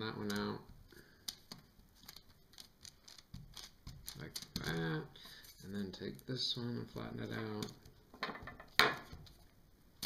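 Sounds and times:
fingers pressing clay on paper: 0.2 - 5.0.

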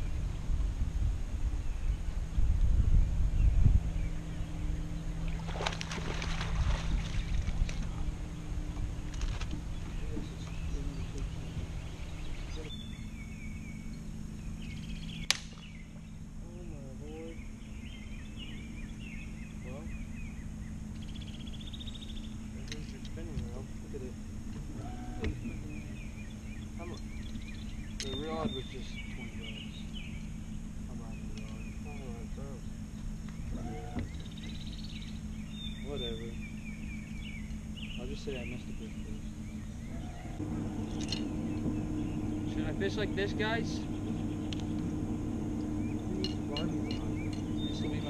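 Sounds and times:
steady low hum: 0.0 - 48.0
small birds chirping: 1.5 - 48.0
sharp crack: 15.2 - 15.7
muffled man's voice: 16.4 - 17.4, 38.0 - 39.3, 46.0 - 48.0.

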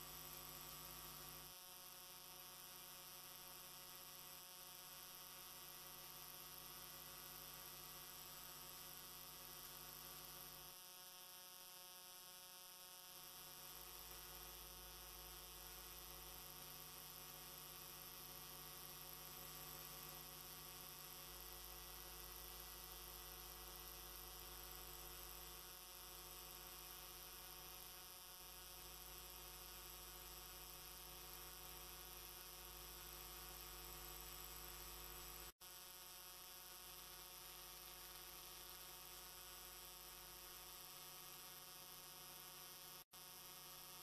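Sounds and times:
faint electrical mains hum: 0.0 - 44.0.

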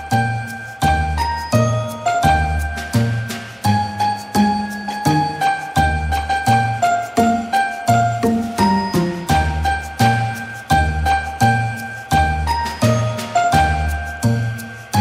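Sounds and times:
bell-like music over bass line: 0.0 - 15.0.

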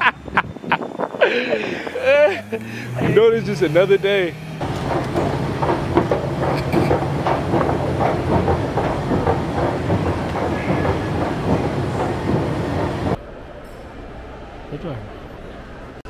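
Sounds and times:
escalator steps clattering: 0.0 - 13.2
escalator running: 0.0 - 16.0
indoor hall ambience: 4.6 - 16.0.

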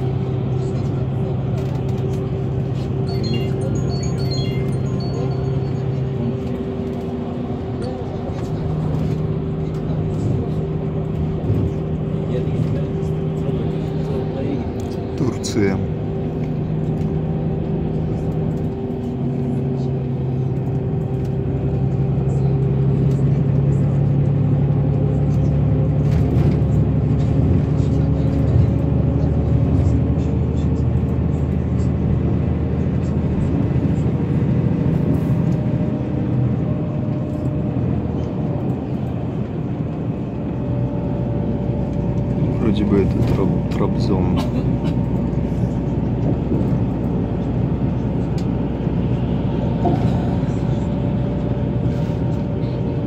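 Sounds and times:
bus engine drone: 0.0 - 53.0
road noise: 0.0 - 53.0.

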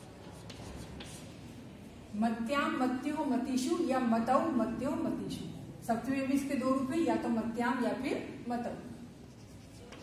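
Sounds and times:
chalk scratching on chalkboard: 0.2 - 1.4, 9.1 - 10.0.

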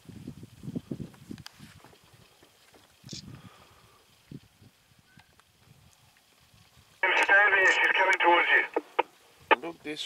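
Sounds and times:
radio click: 7.0 - 9.6
voice over two-way radio: 7.0 - 9.6.

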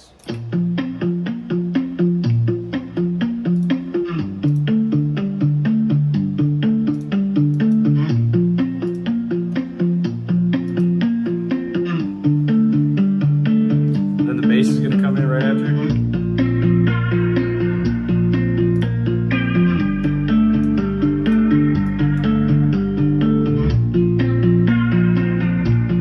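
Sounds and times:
muted-string guitar part: 0.0 - 26.0
plucked guitar melody: 0.1 - 26.0.

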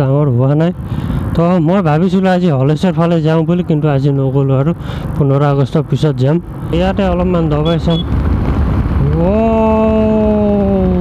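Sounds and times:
motorcycle engine: 0.0 - 11.0
man talking: 1.4 - 8.0
wind noise: 6.4 - 11.0.

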